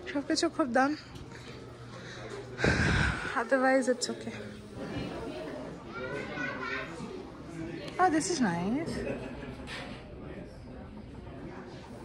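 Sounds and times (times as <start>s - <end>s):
background chatter of voices: 0.0s - 12.0s.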